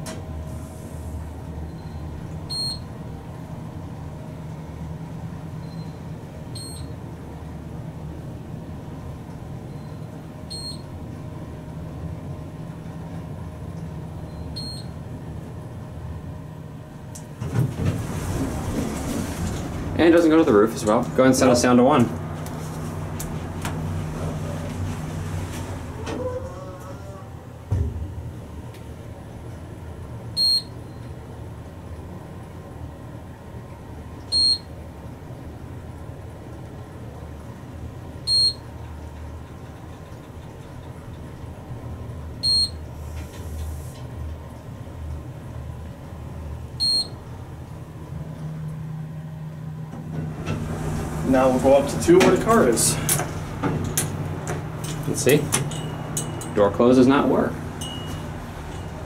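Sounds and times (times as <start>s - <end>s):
elevator ride hum: 0.0s - 59.0s
elevator car thump: 17.3s - 21.2s, 27.6s - 28.3s, 49.9s - 56.6s
electronic floor beep: 57.8s - 58.3s.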